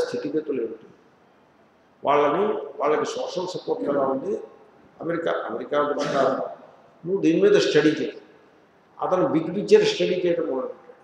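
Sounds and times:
man speaking: 0:00.0 - 0:00.8, 0:02.0 - 0:08.2, 0:09.0 - 0:10.9.

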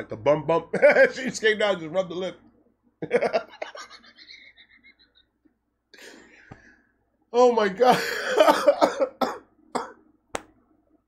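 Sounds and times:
man laughing: 0:03.0 - 0:05.4, 0:07.8 - 0:09.2.

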